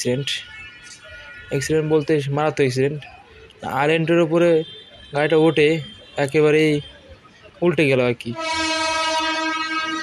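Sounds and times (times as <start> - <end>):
horn sounding long note: 8.3 - 10.0.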